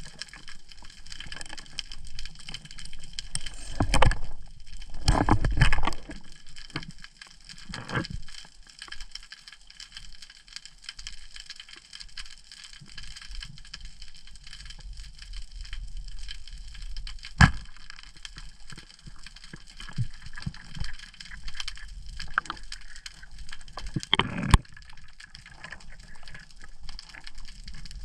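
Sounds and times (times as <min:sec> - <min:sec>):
underwater crackling: 0:00.0 - 0:28.0.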